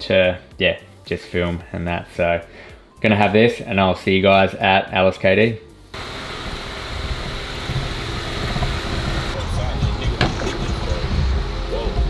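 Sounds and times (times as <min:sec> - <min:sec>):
car cabin road and engine rumble: 0:06.0 - 0:12.0.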